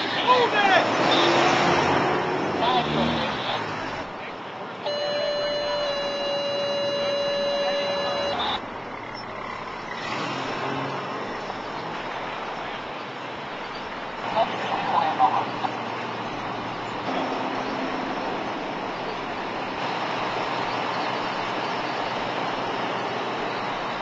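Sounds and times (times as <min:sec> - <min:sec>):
vehicle engines running: 0:00.0 - 0:24.0.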